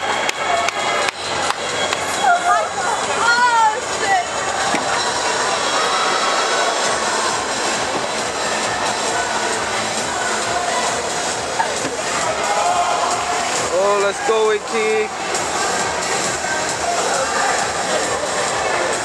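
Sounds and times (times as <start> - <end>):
crowd din: 0.0 - 19.0
spectators shouting and cheering: 0.0 - 19.0.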